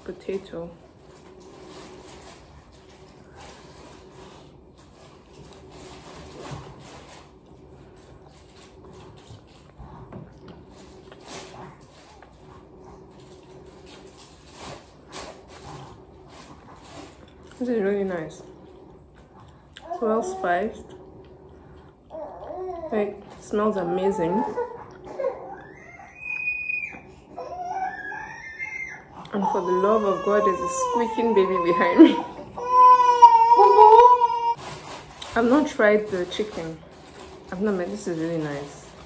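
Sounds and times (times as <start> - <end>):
person chewing food: 16.5 - 17.6, 18.5 - 19.9, 20.8 - 22.6, 24.8 - 25.7
person speaking: 29.3 - 32.4.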